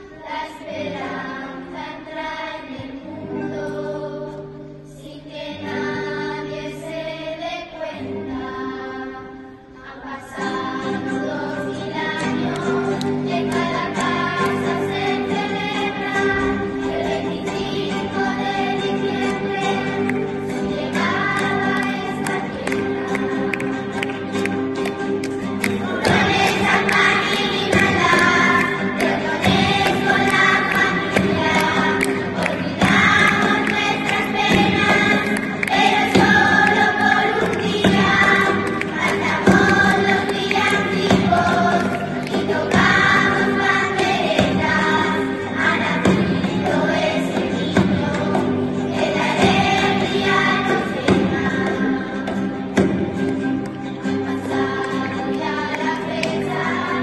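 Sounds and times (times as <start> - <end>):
children's choir singing a carol: 0.0 - 57.0
strummed acoustic guitars: 0.0 - 57.0.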